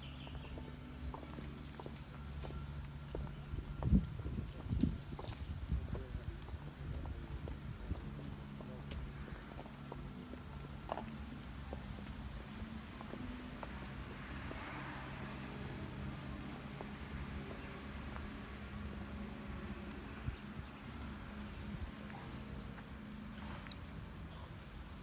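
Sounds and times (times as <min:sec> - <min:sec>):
footsteps of people walking: 0:00.0 - 0:25.0
faint murmuring voices: 0:04.4 - 0:25.0.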